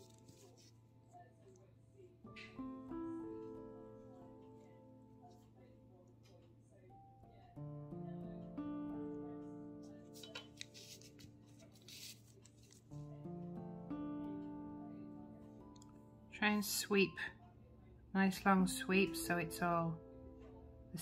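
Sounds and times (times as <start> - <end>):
soft instrumental background music: 0.0 - 21.0.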